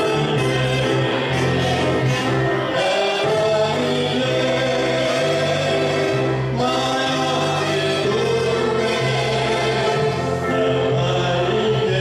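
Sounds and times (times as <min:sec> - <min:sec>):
choir singing gospel: 0:00.0 - 0:12.0
instrumental accompaniment: 0:00.0 - 0:12.0.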